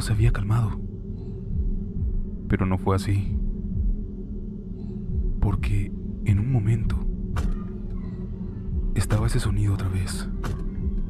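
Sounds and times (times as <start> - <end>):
low dark ambient drone: 0.0 - 11.0.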